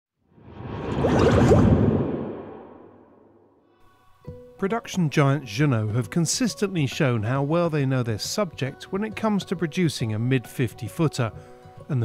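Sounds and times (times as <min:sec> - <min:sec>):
whoosh: 0:00.4 - 0:03.6.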